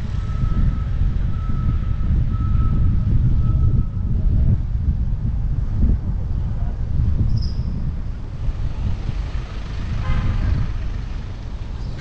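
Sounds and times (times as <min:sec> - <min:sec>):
traffic noise: 0:00.0 - 0:12.0
wind buffeting microphone: 0:00.0 - 0:12.0.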